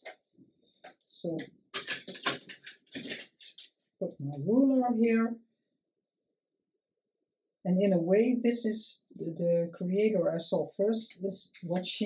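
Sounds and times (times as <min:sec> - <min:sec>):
paper rustling and scraping: 0:01.8 - 0:03.8, 0:11.4 - 0:12.0.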